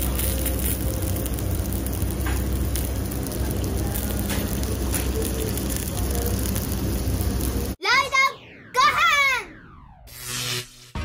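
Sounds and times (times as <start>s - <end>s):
steaks sizzling on hot stone: 0.0s - 7.8s.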